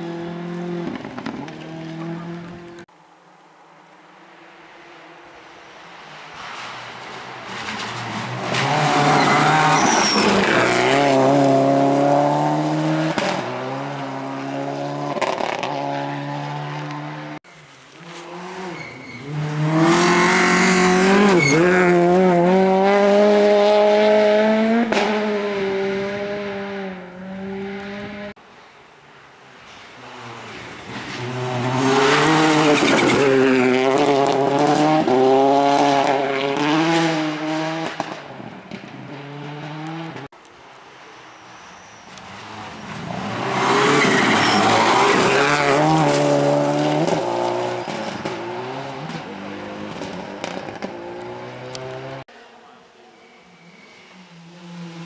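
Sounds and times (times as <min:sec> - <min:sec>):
rally car engines revving past: 0:00.0 - 0:02.9, 0:05.9 - 0:17.4, 0:18.0 - 0:28.4, 0:29.8 - 0:40.3, 0:42.1 - 0:52.3, 0:53.8 - 0:55.0.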